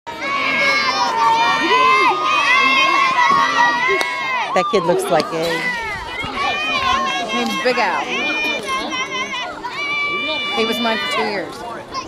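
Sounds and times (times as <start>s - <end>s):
children shouting together: 0.1s - 4.9s, 5.5s - 12.0s.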